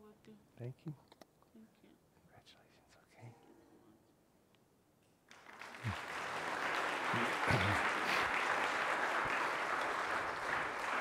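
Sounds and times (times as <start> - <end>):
person whispering: 1.6 - 4.0.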